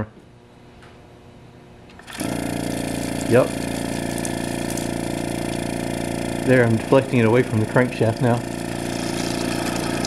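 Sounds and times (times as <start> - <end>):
refrigerator compressor humming: 0.0 - 10.0.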